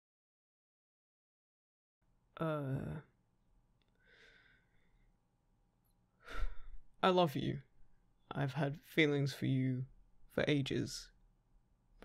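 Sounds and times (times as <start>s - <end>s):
man exhaling: 6.2s - 6.8s.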